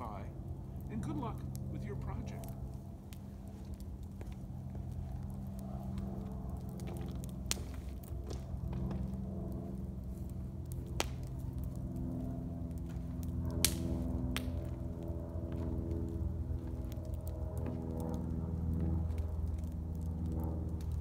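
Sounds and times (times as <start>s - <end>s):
campfire crackling: 0.0s - 21.0s
fire popping: 0.0s - 21.0s
steady low hum: 0.0s - 21.0s.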